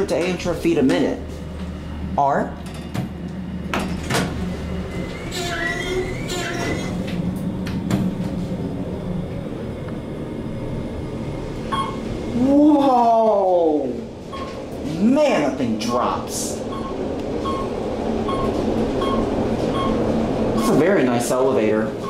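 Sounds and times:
elevator running hum: 0.0s - 22.0s
elevator doors sliding shut: 2.6s - 12.3s, 15.9s - 22.0s.

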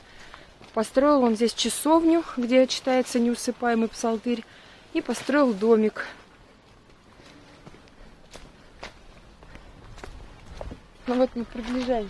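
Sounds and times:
footsteps walking: 0.0s - 4.4s, 5.0s - 12.0s.

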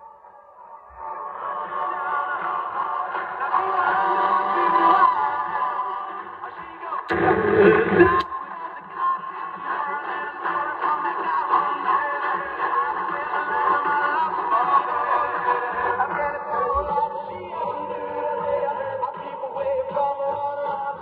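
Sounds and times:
muffled am radio music: 0.7s - 20.1s.

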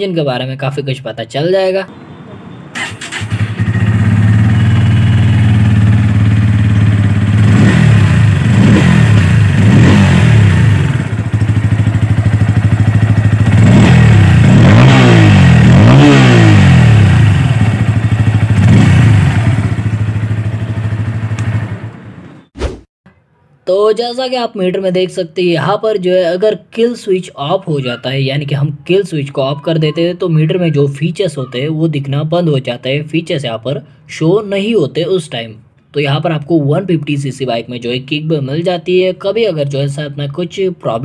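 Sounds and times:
motorcycle engine idling and revving: 2.8s - 22.3s.

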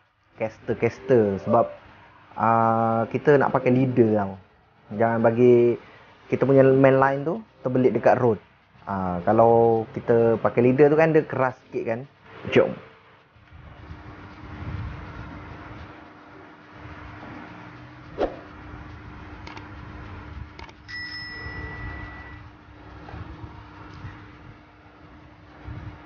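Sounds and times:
bell-like ding: 20.9s - 22.4s.

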